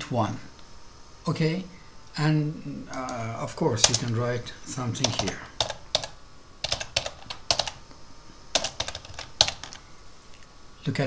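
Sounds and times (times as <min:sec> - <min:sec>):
keyboard key clicks: 0:03.8 - 0:04.2.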